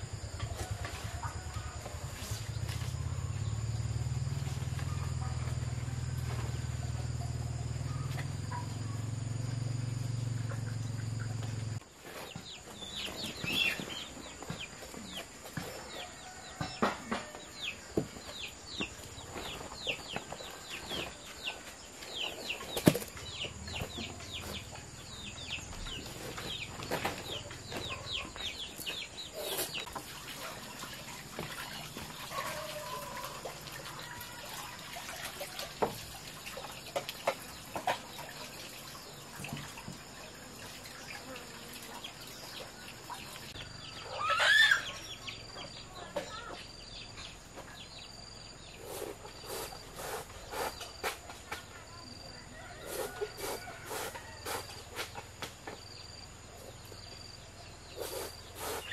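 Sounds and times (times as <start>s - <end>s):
chickens clucking: 25.9s - 34.8s, 36.6s - 38.6s, 42.0s - 46.7s, 58.0s - 58.9s
water splashing: 29.8s - 43.6s
chicken squawk: 44.0s - 45.0s.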